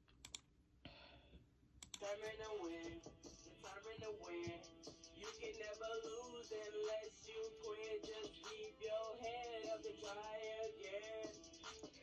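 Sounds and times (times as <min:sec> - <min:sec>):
hip-hop instrumental beat: 0:02.0 - 0:12.0.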